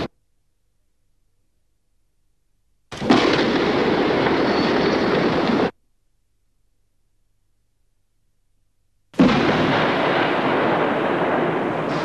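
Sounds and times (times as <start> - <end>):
shell explosion roar: 2.9 - 5.8, 9.2 - 12.0.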